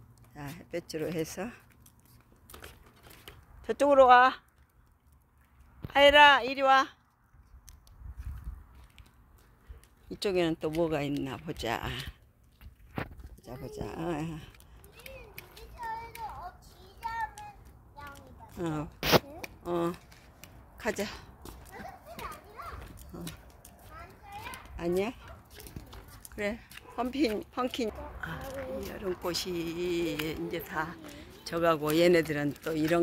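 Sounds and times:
stroller wheels rolling on asphalt: 0.0s - 33.0s
walking footsteps: 7.0s - 33.0s.

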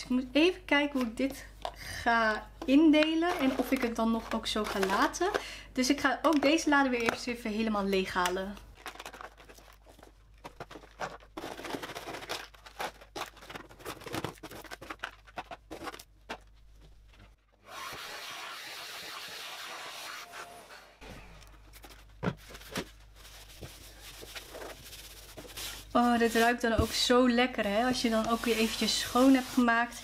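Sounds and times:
plastic items clicking and knocking: 1.0s - 7.4s, 8.1s - 16.6s.

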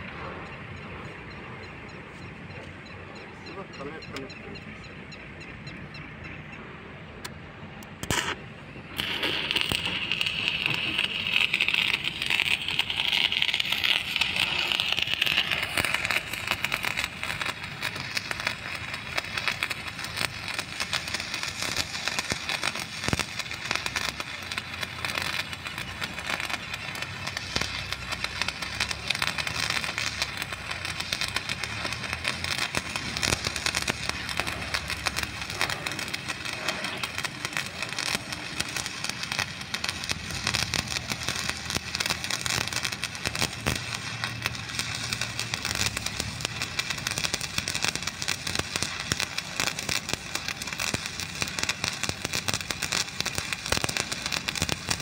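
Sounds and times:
welding arc crackling: 7.8s - 55.0s.

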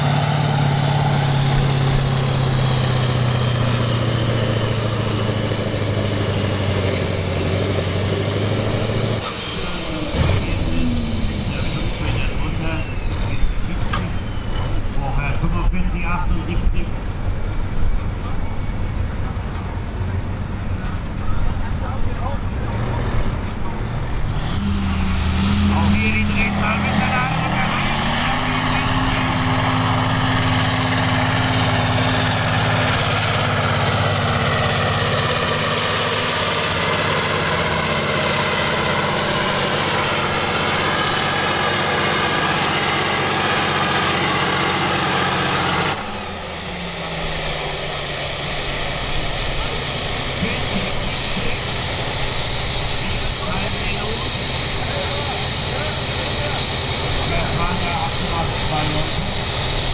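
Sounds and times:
high turbo whine: 0.0s - 59.9s
tractor diesel engine revving: 0.0s - 59.9s.

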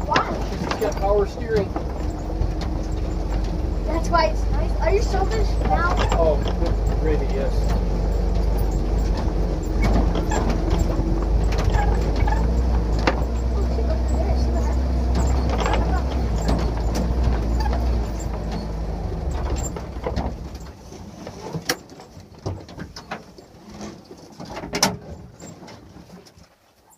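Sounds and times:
car engine running: 0.0s - 21.6s
knocks and clunks: 0.0s - 26.4s.

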